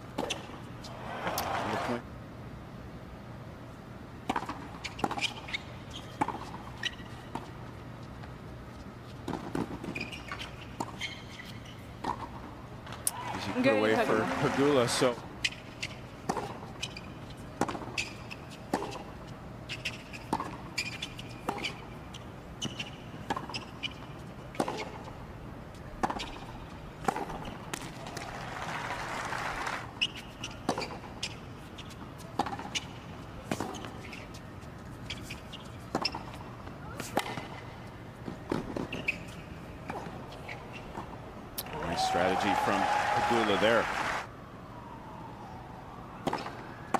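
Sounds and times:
crowd applause: 0.9 - 2.0, 13.2 - 15.0, 28.2 - 29.8, 41.7 - 44.3
tennis ball hits and bounces: 4.2 - 7.5, 9.3 - 19.2, 19.9 - 21.8, 22.6 - 25.1, 26.0 - 28.7, 31.8 - 34.3, 35.1 - 36.4, 37.0 - 37.6, 38.2 - 43.8, 46.2 - 46.9.

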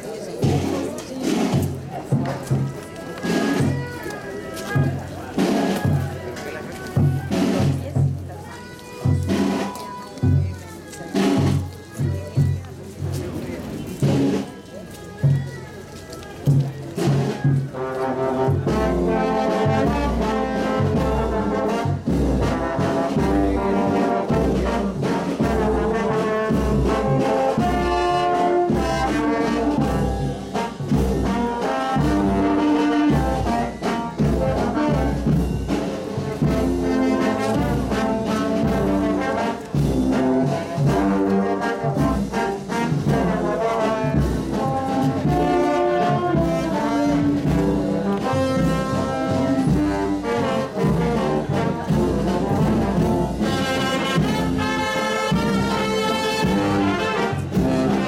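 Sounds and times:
trombones and trumpets playing: 17.7 - 58.0.

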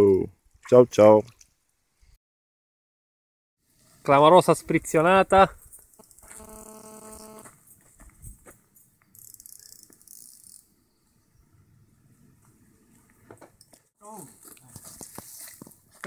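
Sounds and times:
faint steady buzzing tone: 5.8 - 7.6
thin high hiss: 5.9 - 7.5.

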